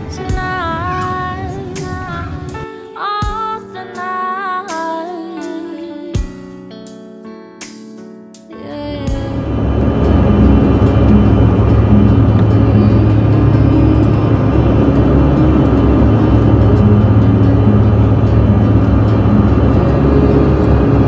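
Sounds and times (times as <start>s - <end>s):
airliner engine and airflow roar: 0.0s - 2.7s, 8.7s - 21.0s
faint music: 0.0s - 6.6s, 8.4s - 21.0s.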